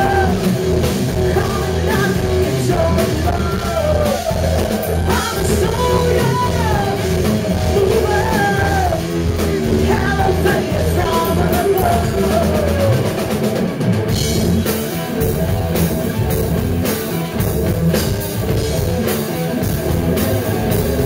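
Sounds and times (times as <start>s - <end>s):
distorted live rock band: 0.0s - 21.0s
woman singing: 1.3s - 9.0s, 9.6s - 13.0s.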